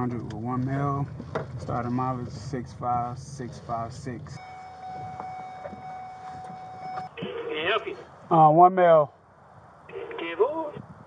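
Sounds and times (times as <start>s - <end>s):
intercom ringing tone: 4.3s - 7.9s.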